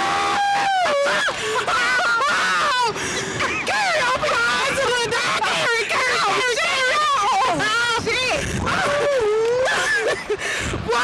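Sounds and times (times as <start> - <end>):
women wailing: 0.0 - 11.0.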